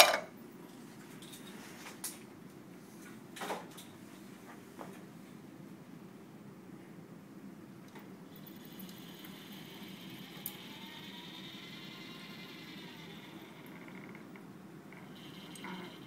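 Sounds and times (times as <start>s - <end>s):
robot arm motors whining: 8.4s - 14.2s.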